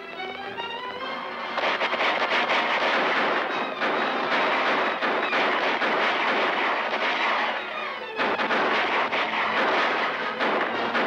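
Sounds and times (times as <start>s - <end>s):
rifle and pistol shots: 1.5s - 11.0s.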